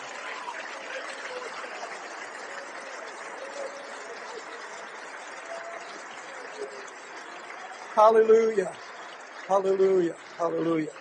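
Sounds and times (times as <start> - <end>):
congregation praying aloud: 0.0 - 11.0.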